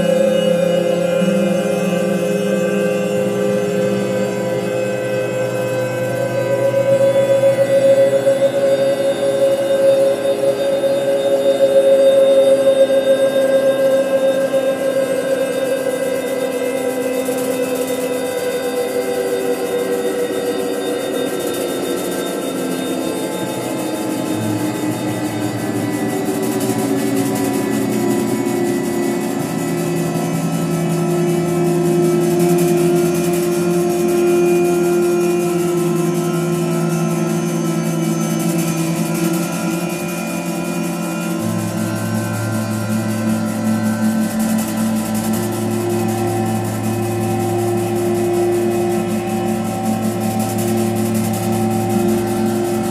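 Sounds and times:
synthesizer drones: 0:00.0 - 0:52.9.

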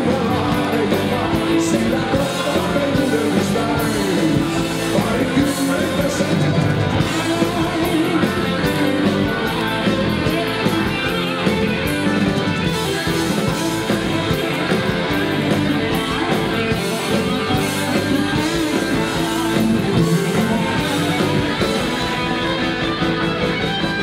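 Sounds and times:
electric guitar: 0:00.0 - 0:24.0
rock band playing live: 0:00.0 - 0:24.0.

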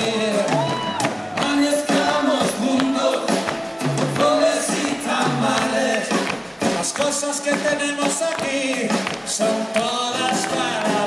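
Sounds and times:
live band playing latin song: 0:00.0 - 0:11.0.

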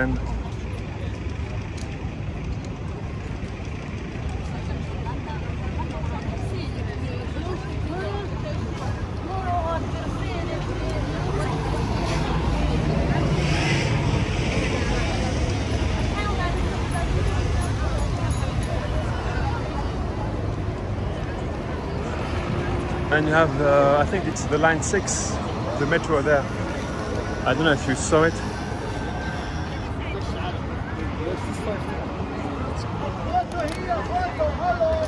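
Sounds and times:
crowd chatter: 0:00.0 - 0:35.0
road traffic rumble: 0:00.0 - 0:35.0.

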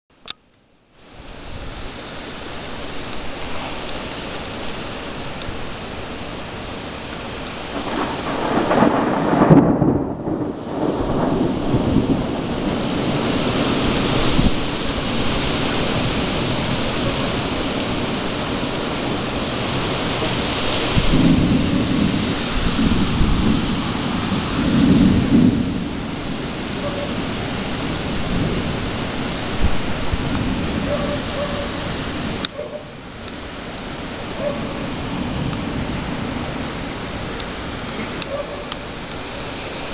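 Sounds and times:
rain hissing: 0:00.8 - 0:39.9
thunder rumbling: 0:04.6 - 0:39.9.

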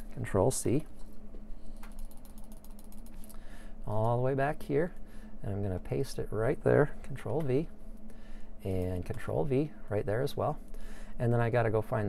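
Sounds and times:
computer mouse clicking: 0:01.8 - 0:03.4.

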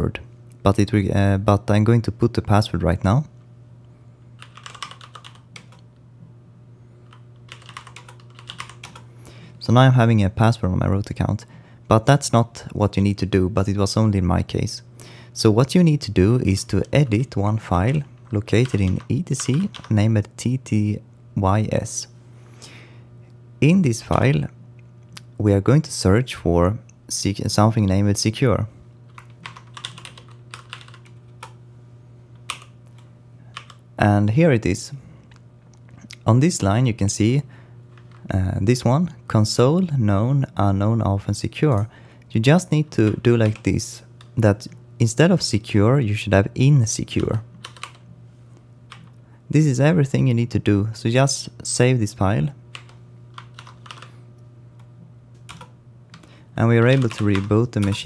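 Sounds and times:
steady low hum: 0:00.0 - 0:58.0
computer keyboard typing: 0:04.4 - 0:05.8, 0:07.1 - 0:09.0, 0:16.6 - 0:20.0, 0:29.1 - 0:31.6, 0:32.5 - 0:33.8, 0:37.9 - 0:38.3, 0:42.9 - 0:44.4, 0:47.2 - 0:48.0, 0:52.7 - 0:54.1, 0:55.4 - 0:58.0.

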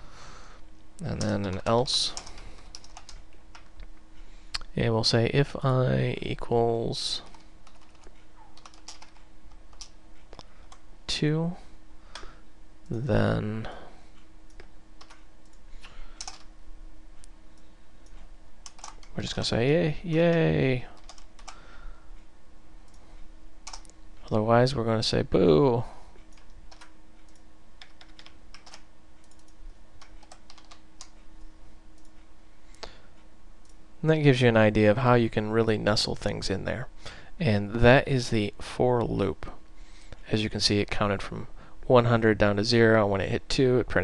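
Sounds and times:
faint steady hum: 0:00.0 - 0:44.0
typing on computer keyboard: 0:01.2 - 0:03.7, 0:07.2 - 0:09.9, 0:14.5 - 0:15.2, 0:16.2 - 0:16.5, 0:18.6 - 0:19.1, 0:21.0 - 0:21.6, 0:23.6 - 0:23.9, 0:26.3 - 0:31.2.

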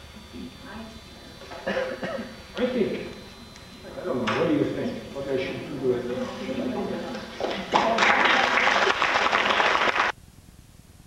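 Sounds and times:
audience applauding: 0:07.1 - 0:10.1.

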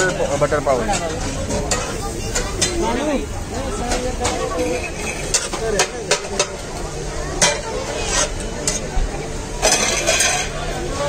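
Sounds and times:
food sizzling: 0:00.5 - 0:11.0
metal spatula scraping griddle: 0:04.2 - 0:06.6, 0:07.4 - 0:08.9, 0:09.6 - 0:10.6.

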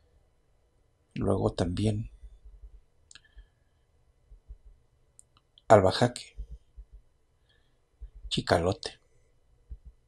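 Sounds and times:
soft low thumps: 0:02.1 - 0:02.9, 0:04.2 - 0:04.9, 0:06.2 - 0:07.1, 0:08.0 - 0:08.4, 0:09.6 - 0:10.0
faint clicks: 0:02.2 - 0:03.6, 0:04.3 - 0:05.7.

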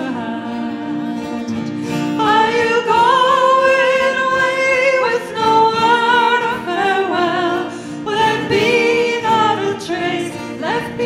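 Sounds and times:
acoustic guitar: 0:00.0 - 0:11.0
women singing folk song: 0:00.0 - 0:11.0.

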